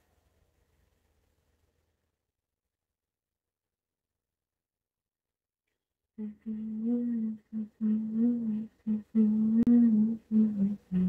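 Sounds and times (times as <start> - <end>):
woman humming a tune: 6.2 - 11.0.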